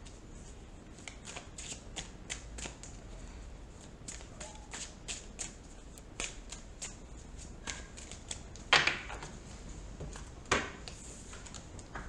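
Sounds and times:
cards being shuffled: 0:00.9 - 0:03.0, 0:03.8 - 0:08.7.

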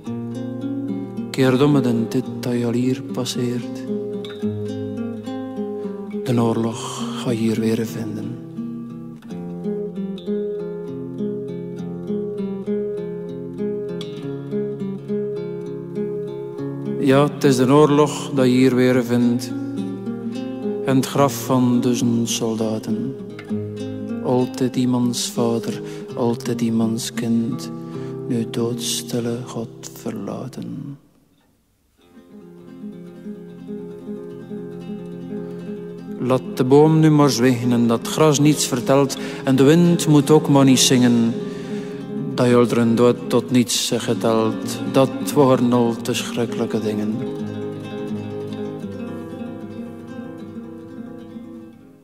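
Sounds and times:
plucked acoustic guitar: 0:00.0 - 0:52.0.

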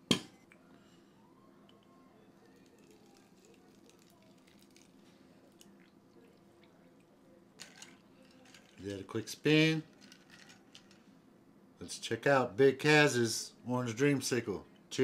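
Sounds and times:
liquid pouring over ice: 0:02.6 - 0:06.0.

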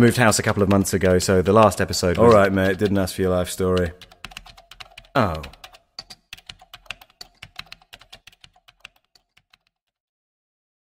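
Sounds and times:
typing on computer keyboard: 0:00.3 - 0:10.0.

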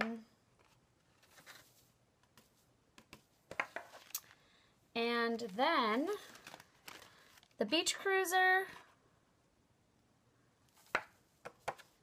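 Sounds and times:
cardstock tapping and rustling: 0:02.3 - 0:04.1, 0:10.8 - 0:12.0.

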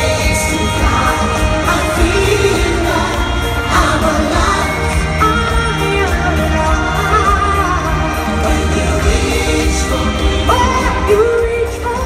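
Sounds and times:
woman singing a ballad: 0:00.0 - 0:12.0.

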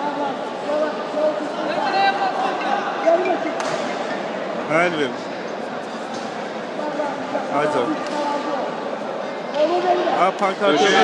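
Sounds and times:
background hubbub: 0:00.0 - 0:11.0.

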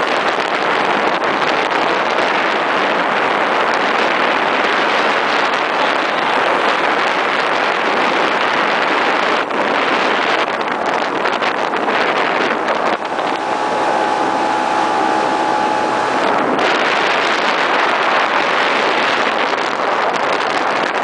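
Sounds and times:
boat motor running: 0:00.0 - 0:21.0
water rushing: 0:00.0 - 0:21.0
wind on microphone: 0:00.0 - 0:21.0.

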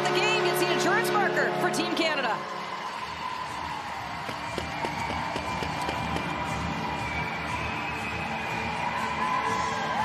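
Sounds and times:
crowd whooping and cheering: 0:01.9 - 0:10.0.

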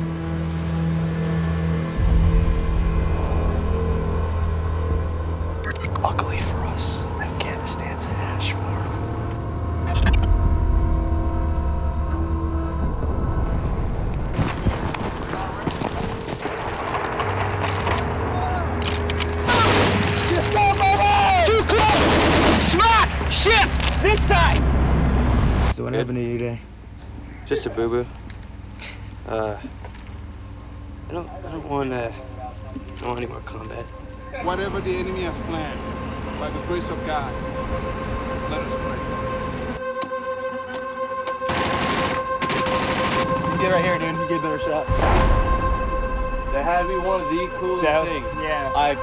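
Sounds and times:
low sustained music score: 0:00.0 - 0:22.3, 0:22.9 - 0:49.0.

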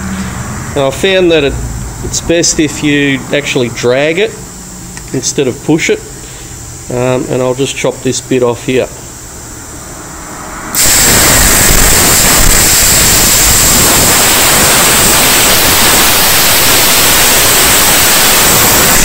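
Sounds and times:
air hissing: 0:10.6 - 0:19.0
plasma arc cutting steel: 0:10.7 - 0:19.0.

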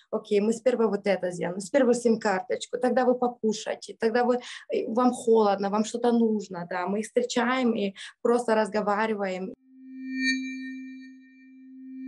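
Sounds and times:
bell-like electronic tones: 0:09.6 - 0:12.0.

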